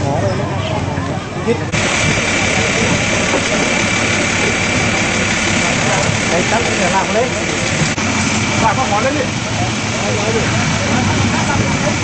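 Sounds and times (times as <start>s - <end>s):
faint voices: 0.0s - 12.0s
fire truck engine idling: 1.2s - 12.0s.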